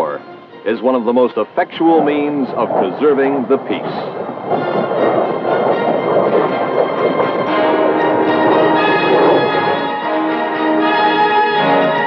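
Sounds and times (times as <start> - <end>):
held brass chords: 0.0 - 12.0
orchestral film music: 0.0 - 12.0
dense noisy rush: 0.7 - 12.0.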